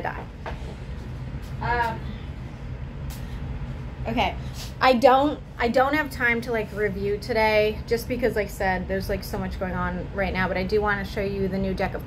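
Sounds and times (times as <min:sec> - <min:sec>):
electric fan running: 0:00.0 - 0:12.0.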